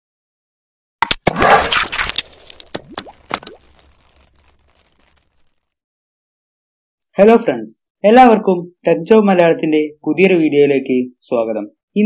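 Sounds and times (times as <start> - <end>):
sharp pops with rising tones: 1.0 - 5.7.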